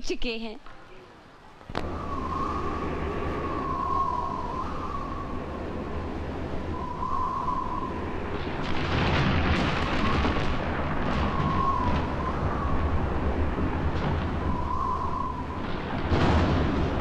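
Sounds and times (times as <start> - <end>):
rumbling swell: 1.7 - 17.0
wavering high tone: 1.8 - 8.8.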